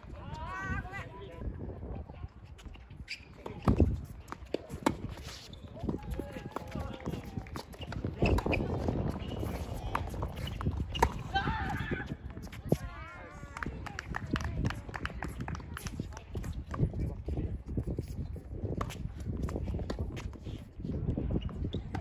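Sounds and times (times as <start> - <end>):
players' footsteps: 3.4 - 16.9
ball bouncing: 6.2 - 11.8.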